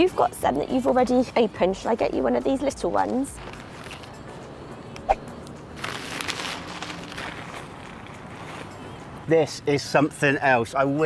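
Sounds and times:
rustling of handled object: 0:03.4 - 0:04.2, 0:05.8 - 0:08.9.

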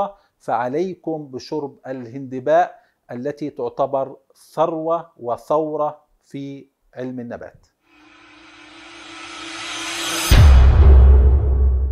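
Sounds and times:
rushing riser sound effect: 0:07.9 - 0:11.9.

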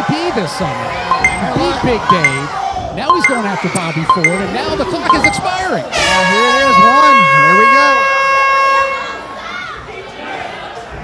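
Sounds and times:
crowd noise in a hall: 0:00.0 - 0:11.0
air horn buzzer: 0:06.2 - 0:09.1.

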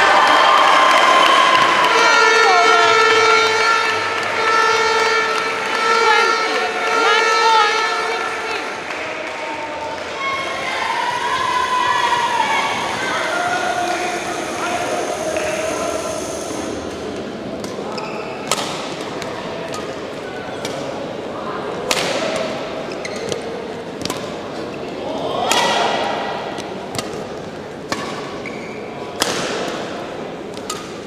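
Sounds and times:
crowd noise: 0:00.0 - 0:31.0
horn-like held tone: 0:01.4 - 0:08.9, 0:10.3 - 0:17.0
racket hitting shuttlecock: 0:17.6 - 0:20.9, 0:21.8 - 0:24.4, 0:25.5 - 0:31.0.

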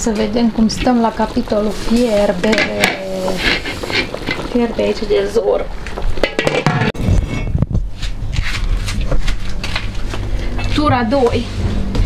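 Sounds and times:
stockpot handling noise: 0:00.1 - 0:07.0
pot knocks: 0:06.1 - 0:07.0.

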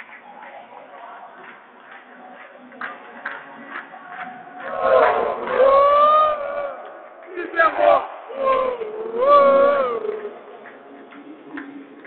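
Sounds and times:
low hall noise: 0:00.0 - 0:12.0
voices: 0:00.4 - 0:11.1
team shouting a cheer: 0:04.6 - 0:10.1.

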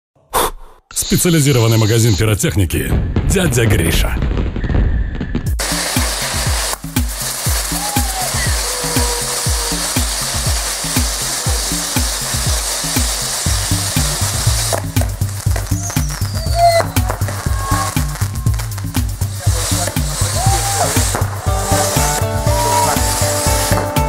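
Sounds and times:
music with steady beat: 0:05.5 - 0:24.0
fireworks spraying sparks hiss: 0:05.6 - 0:24.0.

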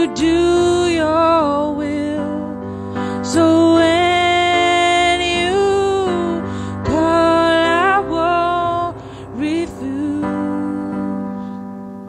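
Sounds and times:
woman singing worship song: 0:00.0 - 0:11.7
electric keyboard chords: 0:00.0 - 0:12.0.

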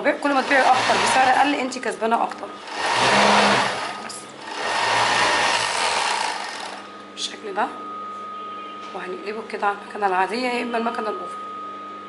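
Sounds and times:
overlock sewing machine running: 0:00.3 - 0:01.4, 0:02.6 - 0:06.9.

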